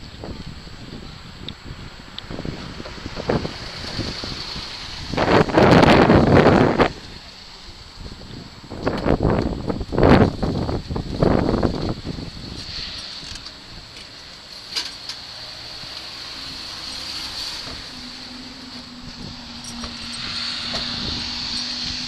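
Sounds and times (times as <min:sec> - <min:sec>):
wind buffeting microphone: 0:00.0 - 0:13.9, 0:18.8 - 0:22.0.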